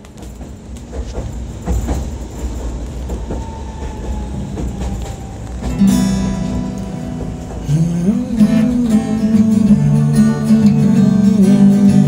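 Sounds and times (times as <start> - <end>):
tram rumbling: 0.0 - 12.0
wheel clacks over rails: 0.0 - 12.0.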